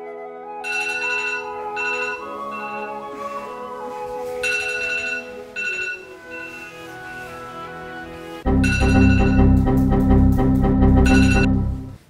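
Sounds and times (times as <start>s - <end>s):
soft background music: 0.0s - 12.0s
phone alarm ringtone: 0.6s - 3.2s, 4.4s - 7.4s, 8.5s - 9.5s, 11.0s - 11.6s.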